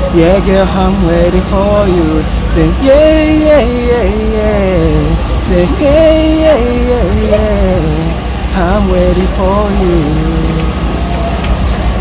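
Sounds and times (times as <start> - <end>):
man singing: 0.0 - 10.8
low background rumble: 0.0 - 12.0.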